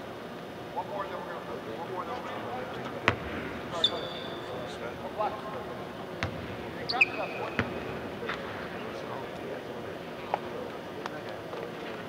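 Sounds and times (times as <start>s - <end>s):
basketball bouncing on hardwood: 3.0s - 3.4s, 6.2s - 8.5s.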